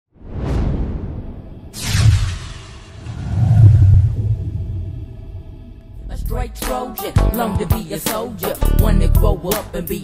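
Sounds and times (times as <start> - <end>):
deep rumble: 0.7 - 6.7.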